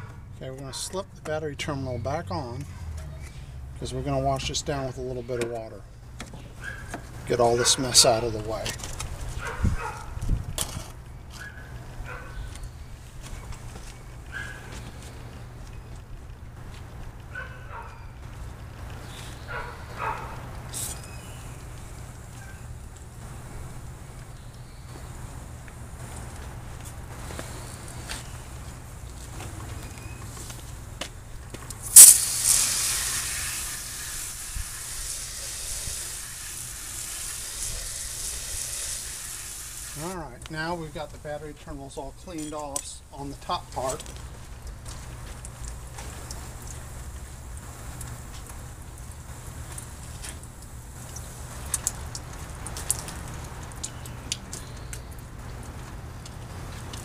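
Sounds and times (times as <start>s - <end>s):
hose nozzle spraying water: 31.7s - 40.9s, 45.3s - 54.2s.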